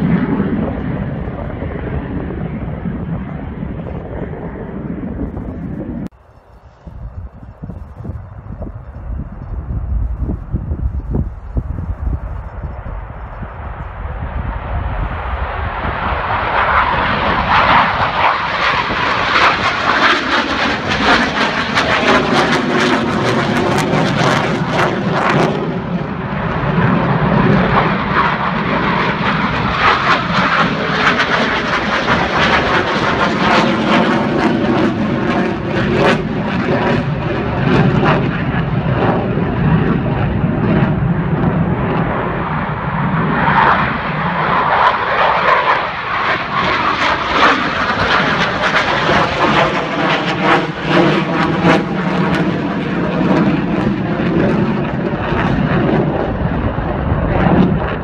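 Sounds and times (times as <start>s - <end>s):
jet engine roar overhead: 0.0s - 58.0s.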